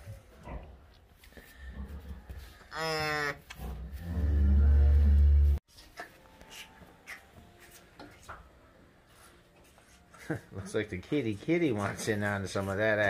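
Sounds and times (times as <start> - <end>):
cow mooing: 2.7 - 5.6.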